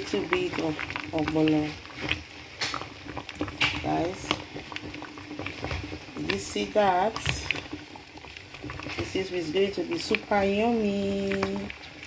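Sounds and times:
thick soup bubbling in a pot: 0:00.0 - 0:12.0.

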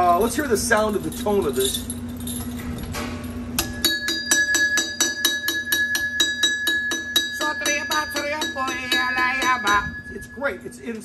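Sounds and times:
metal bell struck with drumstick: 0:03.6 - 0:11.0.

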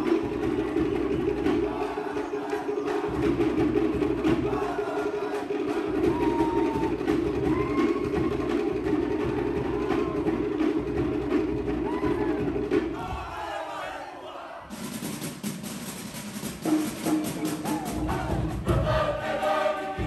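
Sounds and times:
group chanting: 0:00.0 - 0:10.3, 0:11.8 - 0:14.8, 0:17.5 - 0:20.0
percussion strikes: 0:00.0 - 0:13.4, 0:14.7 - 0:20.0.

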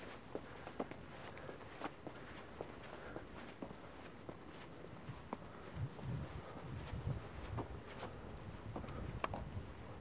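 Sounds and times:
footsteps on pavement: 0:00.0 - 0:09.6.

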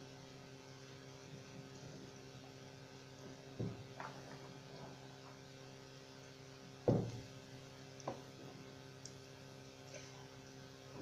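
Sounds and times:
low electrical hum: 0:00.0 - 0:11.0
kitchenware thumps on counter: 0:06.9 - 0:07.2.

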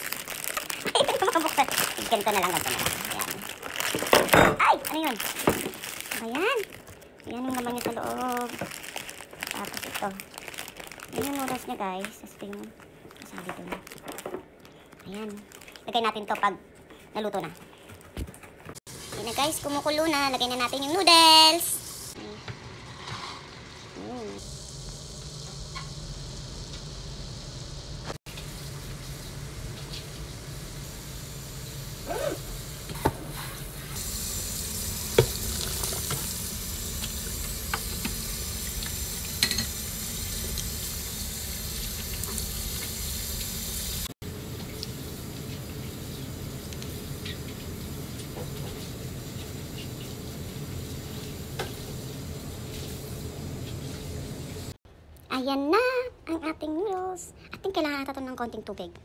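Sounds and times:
water running through a strainer: 0:00.0 - 0:04.2, 0:32.8 - 0:51.7
water boiling in a pot: 0:00.0 - 0:04.3, 0:18.9 - 0:54.8.

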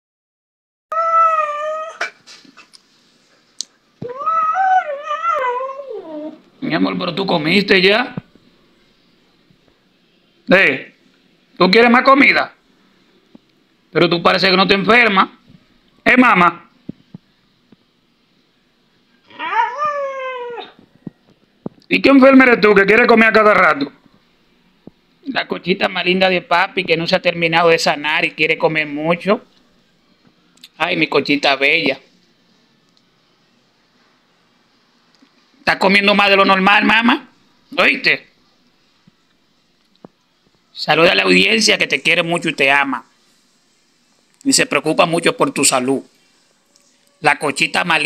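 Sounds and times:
dog howling: 0:00.9 - 0:02.1, 0:04.0 - 0:06.4, 0:19.3 - 0:20.8
husky whining: 0:00.9 - 0:02.2, 0:04.0 - 0:06.5, 0:19.2 - 0:20.8.

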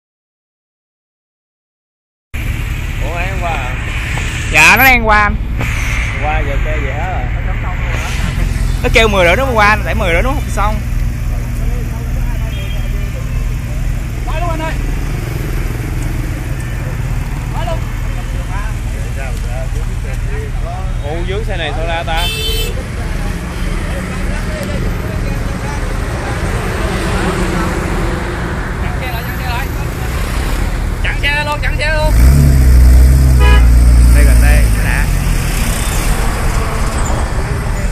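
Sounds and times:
car engine idling: 0:02.4 - 0:37.9
street traffic rumble: 0:02.4 - 0:37.9
car horn toot: 0:12.4 - 0:13.2, 0:22.1 - 0:22.8, 0:33.3 - 0:33.9.

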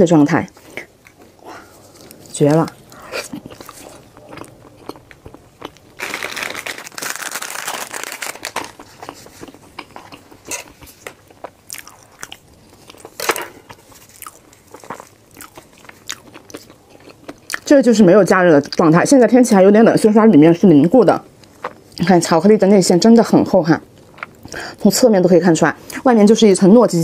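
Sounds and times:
wet sticky chewing: 0:00.5 - 0:17.7.

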